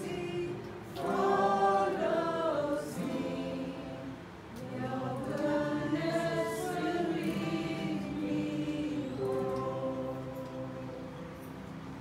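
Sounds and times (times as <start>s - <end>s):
woman and man singing: 0.0s - 11.1s
acoustic guitar: 0.0s - 12.0s.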